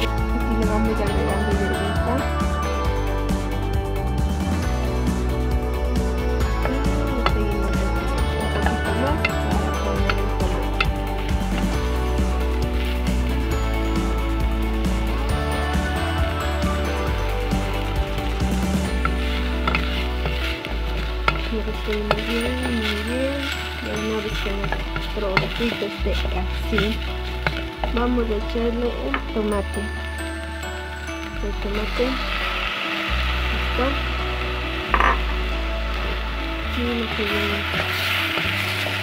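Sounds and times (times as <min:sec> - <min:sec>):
background music with bass: 0:00.0 - 0:39.0
vegetables sizzling in a pot: 0:00.0 - 0:39.0
wooden spoon stirring: 0:06.0 - 0:39.0
utensil scraping a pot: 0:17.6 - 0:28.1.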